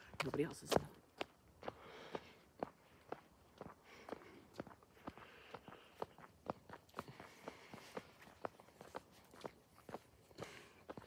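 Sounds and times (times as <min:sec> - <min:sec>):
footsteps on pavement: 0:00.0 - 0:11.0.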